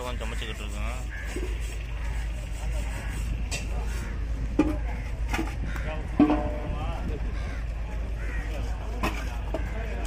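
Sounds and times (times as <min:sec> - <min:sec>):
faint voices: 0:00.0 - 0:10.0
vehicle engine rumbling: 0:00.0 - 0:10.0.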